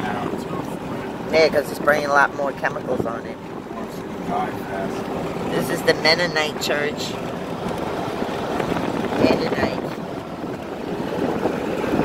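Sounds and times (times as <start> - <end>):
road and wind noise in vehicle: 0.0 - 12.0.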